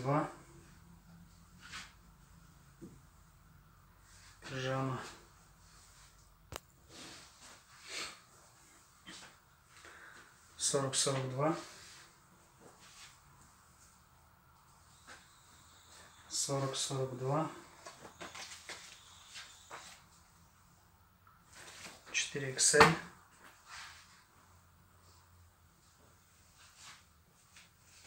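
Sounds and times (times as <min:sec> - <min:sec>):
soft rustling: 0:04.0 - 0:16.1, 0:23.3 - 0:28.0.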